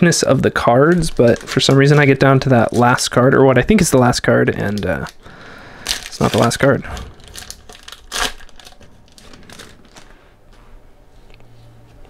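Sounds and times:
foil wrapper crinkling: 0.3 - 10.3.

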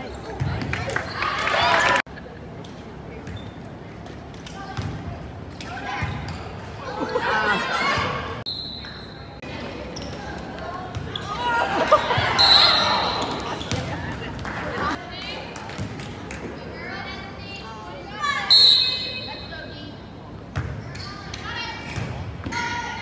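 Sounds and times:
voices calling and cheering: 0.0 - 3.2, 4.5 - 23.0
referee's whistle: 8.5 - 9.3, 12.3 - 13.4, 18.5 - 19.5.

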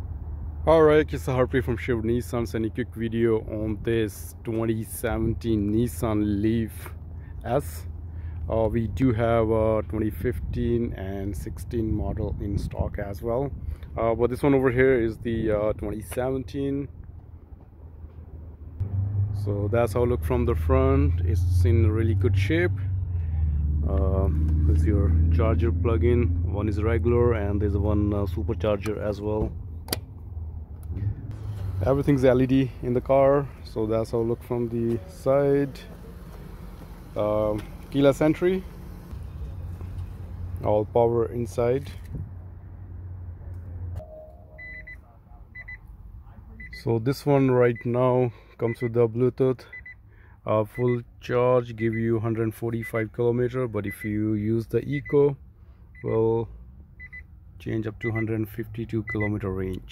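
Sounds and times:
parking lot noise: 0.0 - 59.9
quick high warning beeps: 44.0 - 45.8, 49.7 - 50.0.

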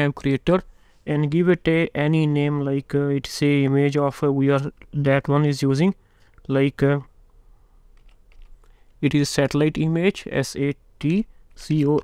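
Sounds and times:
faint keyboard keystrokes: 7.9 - 9.0.

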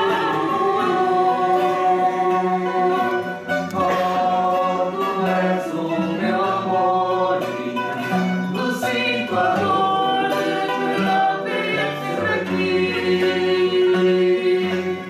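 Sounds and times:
mixed choir singing: 0.0 - 15.0
plucked acoustic guitars: 0.0 - 15.0.

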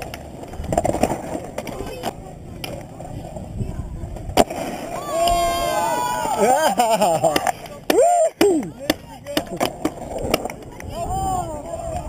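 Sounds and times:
skateboard clack: 0.0 - 12.0
skateboard wheels rolling on concrete: 0.0 - 12.0.

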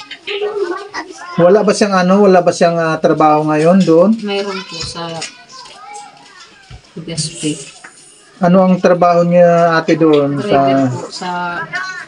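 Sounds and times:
children playing: 0.0 - 12.0.

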